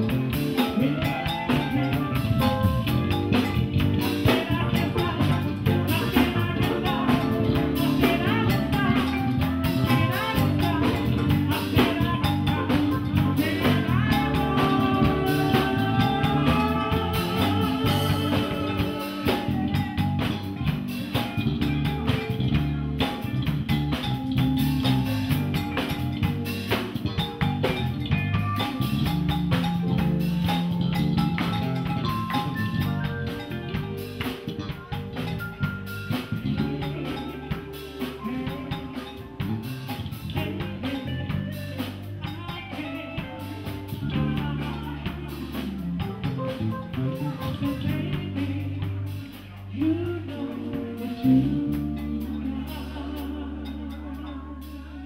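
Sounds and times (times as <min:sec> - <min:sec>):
bass: 0:00.0 - 0:55.0
drum kit: 0:00.0 - 0:55.0
electric guitar: 0:00.0 - 0:55.0
keyboards: 0:00.0 - 0:55.0.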